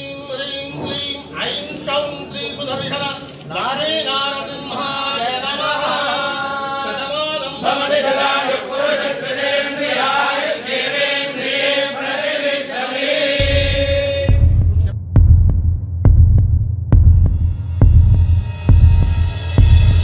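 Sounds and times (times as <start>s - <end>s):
priests chanting in unison: 4.4s - 14.5s
music with deep slow bass beat: 13.4s - 20.0s.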